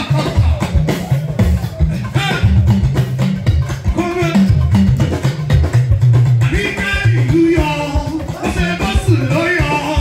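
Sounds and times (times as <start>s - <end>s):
hand drum playing: 0.0s - 10.0s
talking drum: 0.0s - 10.0s.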